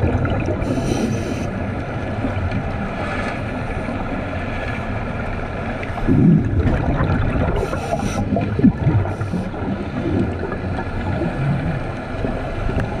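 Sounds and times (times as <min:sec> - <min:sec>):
hissing bursts of exhaled bubbles: 0:00.0 - 0:01.6, 0:06.1 - 0:11.9
low underwater rumble: 0:00.0 - 0:13.0
regulator bubbles gurgling underwater: 0:00.0 - 0:13.0.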